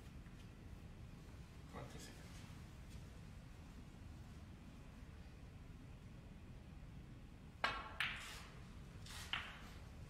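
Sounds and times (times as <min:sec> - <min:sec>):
cue tip striking ball: 0:07.6 - 0:08.4, 0:09.2 - 0:09.8.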